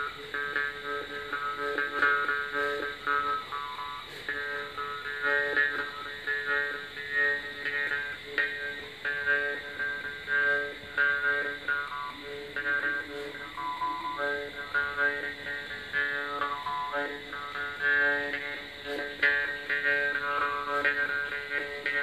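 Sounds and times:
jaw harp playing: 0.0s - 22.0s.

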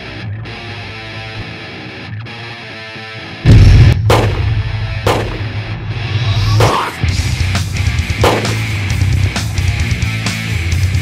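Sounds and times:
distorted heavy metal music: 0.0s - 11.0s
handgun shots: 4.0s - 5.6s, 6.6s - 6.9s, 8.2s - 8.8s.

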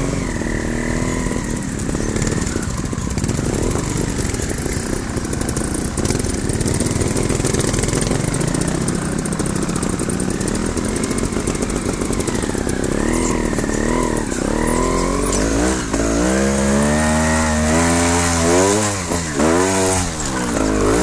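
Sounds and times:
motorcycle engines running: 0.0s - 21.0s.

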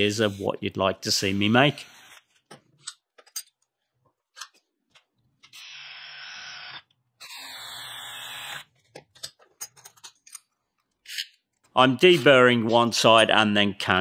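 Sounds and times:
power drill cutting steel: 5.6s - 8.7s.

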